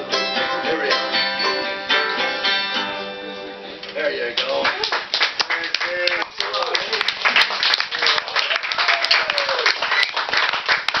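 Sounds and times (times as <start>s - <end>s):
small audience clapping: 4.3s - 11.0s.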